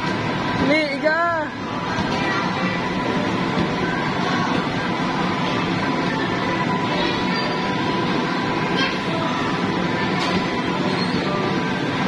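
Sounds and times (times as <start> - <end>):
blower fan whirring: 0.0 - 12.0.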